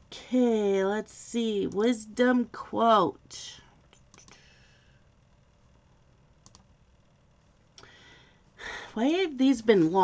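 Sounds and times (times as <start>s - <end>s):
faint clicks: 6.4s - 6.7s.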